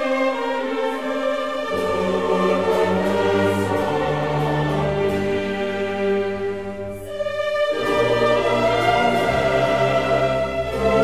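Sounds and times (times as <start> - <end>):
choir and orchestra held chords: 0.0 - 11.0.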